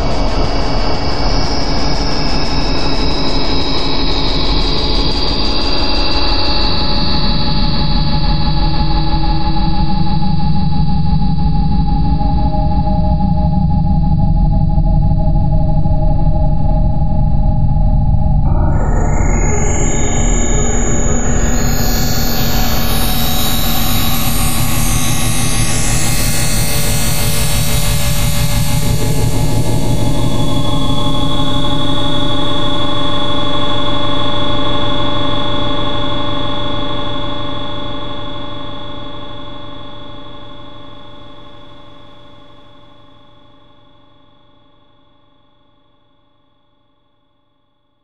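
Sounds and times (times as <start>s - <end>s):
electronic synth drone: 0.0s - 7.8s, 18.4s - 40.6s.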